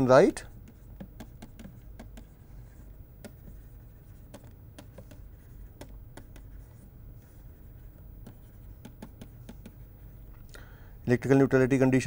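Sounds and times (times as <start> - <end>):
steady low hum: 0.0 - 12.0
stylus tapping on pen tablet: 0.6 - 6.7, 8.2 - 9.9.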